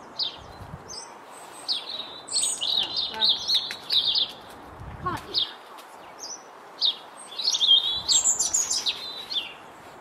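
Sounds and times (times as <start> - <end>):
small birds singing: 0.0 - 9.9.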